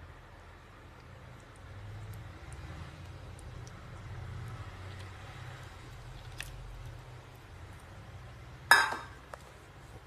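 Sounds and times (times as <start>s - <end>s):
pouring and stirring in a pan: 0.1s - 10.0s.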